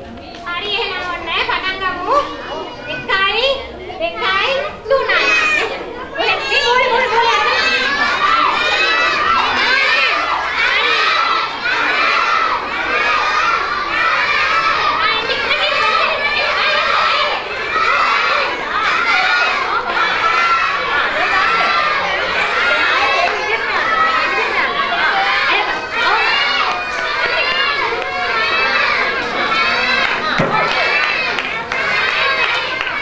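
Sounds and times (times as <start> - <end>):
children shouting and cheering: 0.0 - 33.0.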